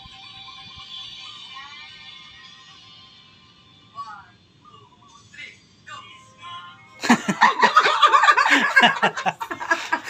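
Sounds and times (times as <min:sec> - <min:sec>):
singing through a phone speaker: 0:00.0 - 0:10.0.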